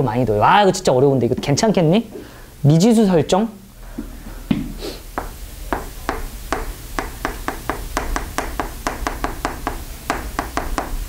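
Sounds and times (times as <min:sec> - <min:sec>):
chalk tapping on chalkboard: 0:05.2 - 0:11.0.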